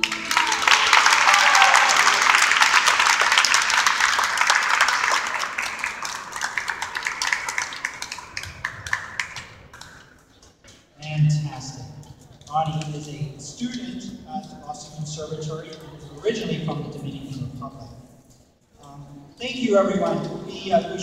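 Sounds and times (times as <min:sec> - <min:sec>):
audience applause: 0:00.0 - 0:10.2.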